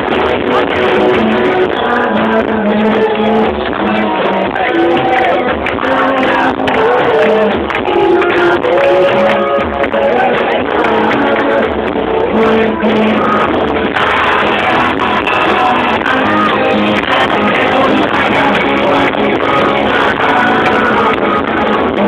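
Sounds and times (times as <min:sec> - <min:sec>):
live band playing loud music: 0:00.0 - 0:22.0
person singing: 0:00.0 - 0:22.0.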